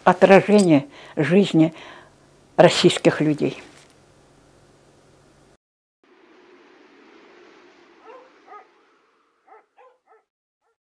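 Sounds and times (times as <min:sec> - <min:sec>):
faint hiss: 0:03.4 - 0:09.7
animal yelping: 0:08.0 - 0:08.7, 0:09.5 - 0:10.8.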